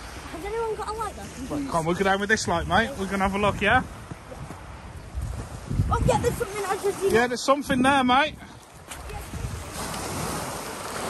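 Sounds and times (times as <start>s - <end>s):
sea surf washing ashore: 0.0s - 11.0s
wind rumbling on microphone: 0.0s - 11.0s.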